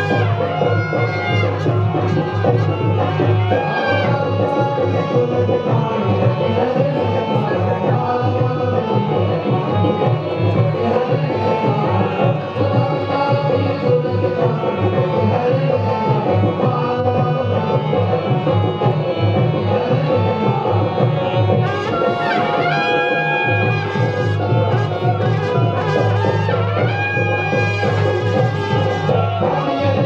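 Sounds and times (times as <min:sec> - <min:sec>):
wind instrument high notes: 0:00.0 - 0:04.3, 0:21.5 - 0:30.0
busy drumming: 0:00.0 - 0:30.0
folk dance music: 0:00.0 - 0:30.0.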